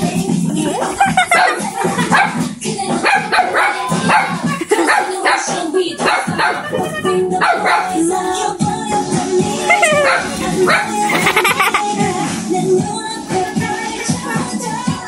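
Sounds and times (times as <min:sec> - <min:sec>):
background music with singing: 0:00.0 - 0:15.0
small dogs barking: 0:00.8 - 0:08.2, 0:09.6 - 0:11.1.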